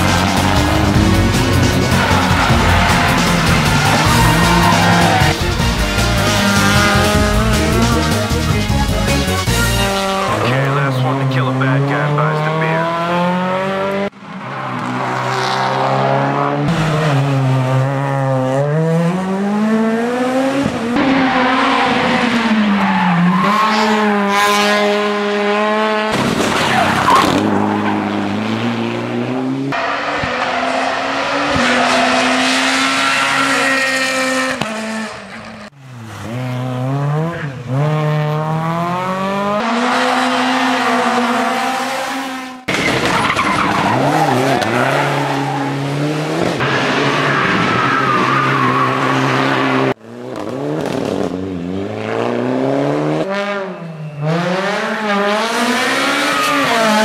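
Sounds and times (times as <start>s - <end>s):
tyres squealing: 0.0s - 9.4s
rally car engines revving: 0.0s - 57.0s.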